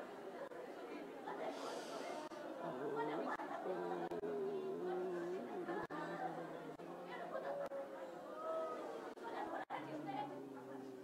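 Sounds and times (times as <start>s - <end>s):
murmur of voices: 0.0s - 11.0s
man singing long held notes: 3.7s - 6.8s.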